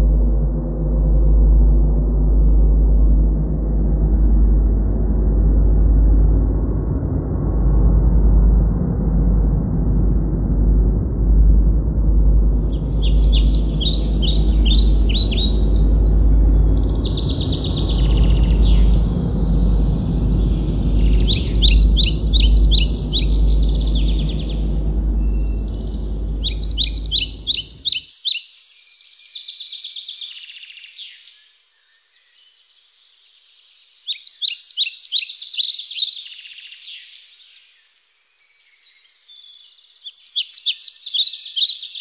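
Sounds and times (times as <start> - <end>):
low rumble: 0.0 - 28.0
wren song trills: 12.5 - 42.0
faint bird calls: 12.6 - 28.2.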